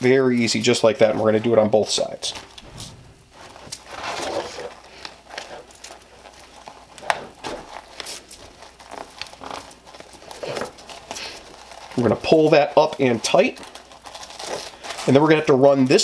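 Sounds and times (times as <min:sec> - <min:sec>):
nylon webbing rustling: 0:00.0 - 0:16.0.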